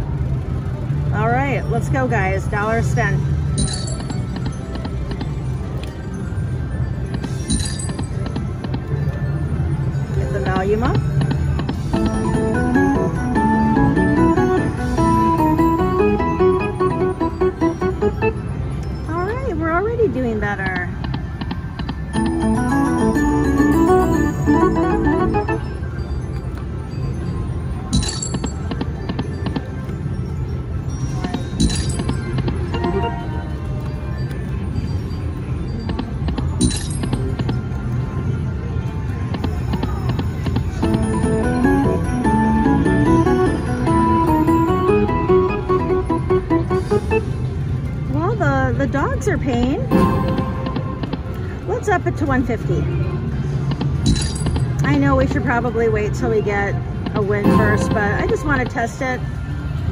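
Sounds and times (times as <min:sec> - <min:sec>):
low casino din: 0:00.0 - 0:59.9
slot machine game sounds: 0:01.4 - 0:48.1, 0:49.4 - 0:52.3, 0:56.9 - 0:59.5
bright clinking chime: 0:07.3 - 0:08.2.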